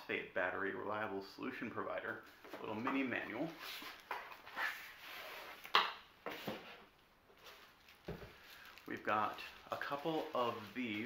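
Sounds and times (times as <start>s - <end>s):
packaging rustling: 7.3s - 11.0s.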